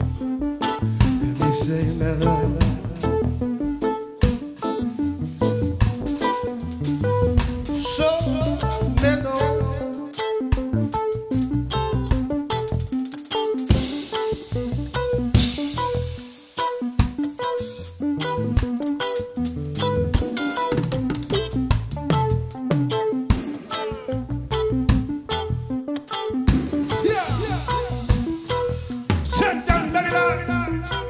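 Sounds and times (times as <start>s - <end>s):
bass guitar: 0.0s - 31.0s
drum kit: 0.0s - 31.0s
electric guitar: 0.0s - 31.0s
electric keyboard: 0.0s - 31.0s.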